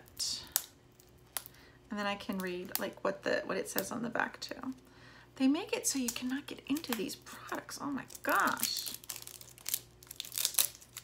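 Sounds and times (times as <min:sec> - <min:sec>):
packaging crinkling and tearing: 0:05.9 - 0:11.0.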